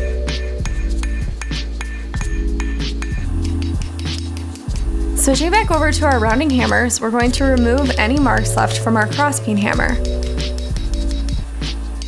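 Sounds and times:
background music with bass: 0:00.0 - 0:12.0
hammer striking steel on anvil: 0:00.6 - 0:04.7.

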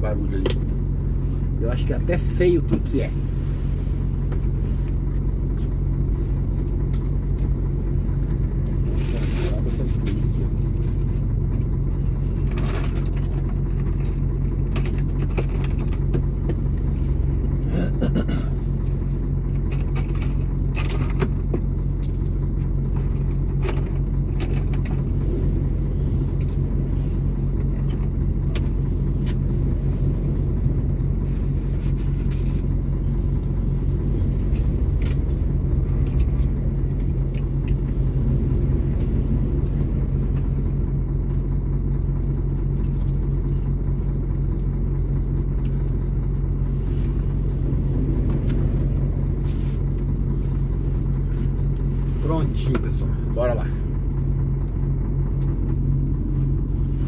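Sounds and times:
diesel truck engine idling: 0:00.0 - 0:57.0
heavy trucks passing: 0:33.7 - 0:41.4, 0:46.7 - 0:52.4.

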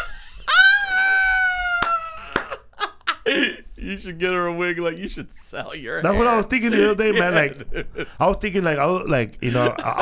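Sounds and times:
man laughing squeal: 0:00.0 - 0:03.2.

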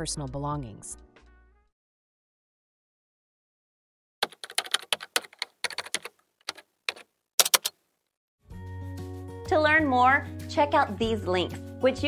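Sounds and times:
keyboard typing: 0:04.2 - 0:07.8.

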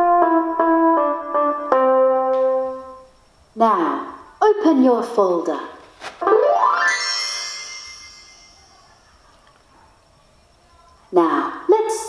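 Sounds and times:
tone gliding upward: 0:06.2 - 0:08.8.

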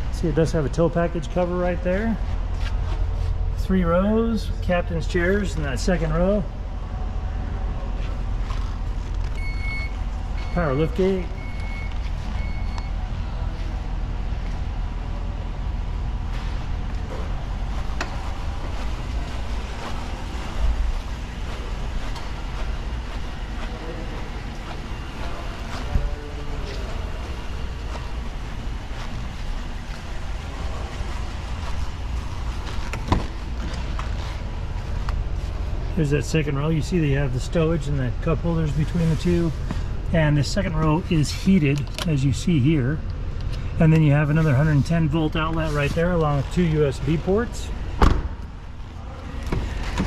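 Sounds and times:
car door shutting with thump: 0:48.0 - 0:48.4.

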